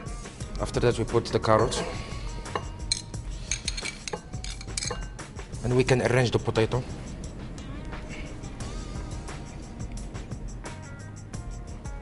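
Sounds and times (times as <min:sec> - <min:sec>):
metal spoon clinking on bowl: 0:01.6 - 0:05.2.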